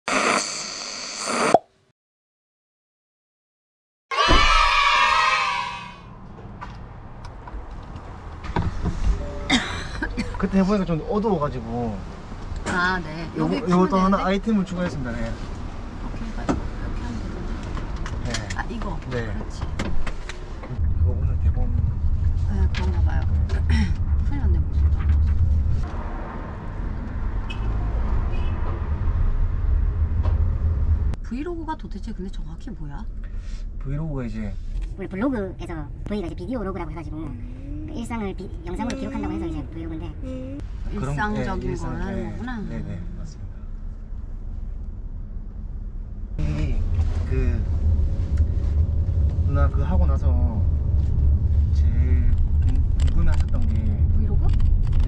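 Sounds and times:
radio static hiss: 0:00.1 - 0:01.6
van road and engine rumble: 0:04.3 - 0:55.0.

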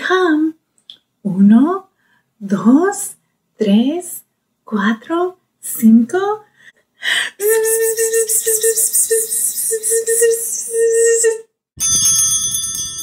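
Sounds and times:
bell ringing high tones: 0:11.8 - 0:13.0.

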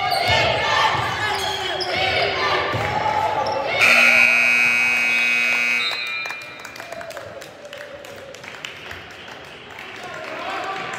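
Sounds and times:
scoreboard horn buzzing: 0:03.8 - 0:06.6.

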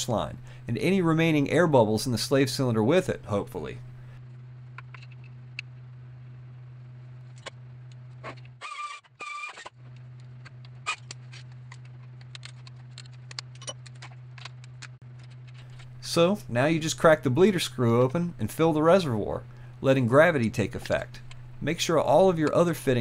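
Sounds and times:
steady low hum: 0:00.0 - 0:23.0.

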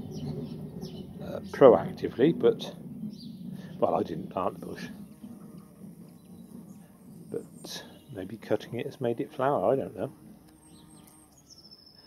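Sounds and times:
bumblebee buzzing: 0:00.0 - 0:12.0.

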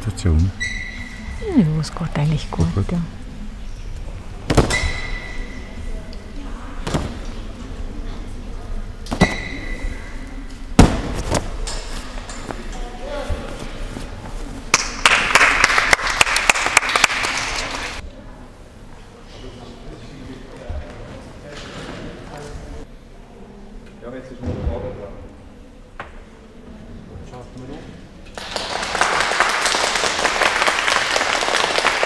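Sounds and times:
thuds of landing on floor mats: 0:10.8 - 0:11.5
people clapping: 0:14.7 - 0:18.0, 0:28.3 - 0:32.0.

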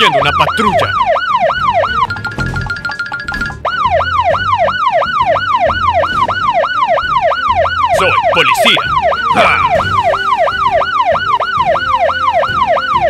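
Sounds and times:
police siren yelp: 0:00.0 - 0:02.4, 0:03.6 - 0:13.0
high pulsing siren tone: 0:00.0 - 0:13.0.

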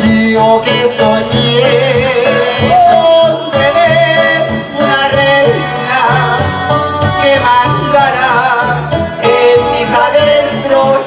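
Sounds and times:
instrumental backing music: 0:00.0 - 0:11.0
man singing into microphone: 0:00.0 - 0:11.0.

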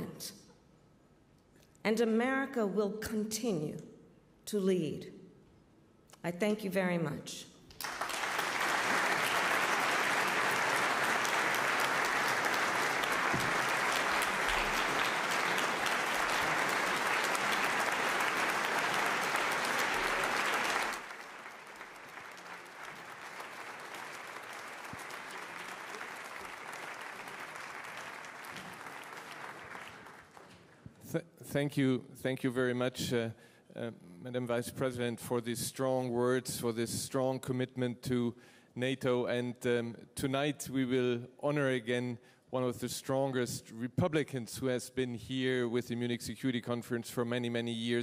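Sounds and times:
audience applauding: 0:07.7 - 0:30.8.

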